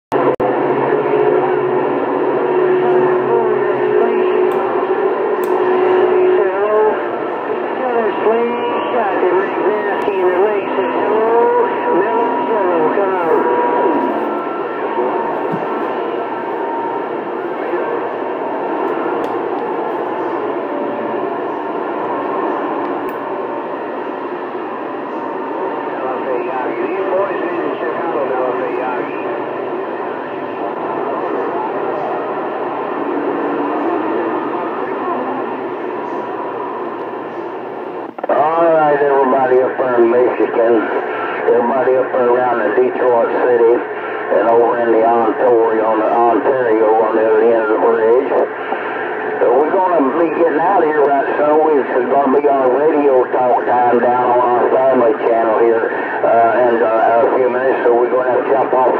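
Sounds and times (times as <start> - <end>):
garbled radio voices: 0.1 - 58.9
radio band noise: 0.1 - 58.9
steady radio whistle: 0.1 - 58.9.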